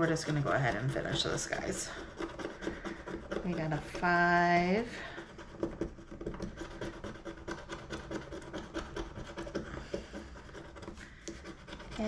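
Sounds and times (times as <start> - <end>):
scratching scratch-off card: 0.0 - 12.0.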